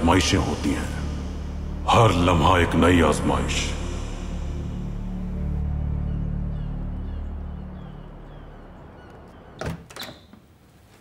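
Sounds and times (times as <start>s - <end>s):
music: 0.0s - 9.6s.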